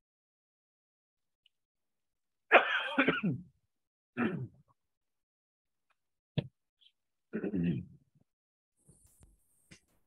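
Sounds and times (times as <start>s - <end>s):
person clearing throat: 2.5s - 3.5s, 4.2s - 4.7s, 7.3s - 8.0s.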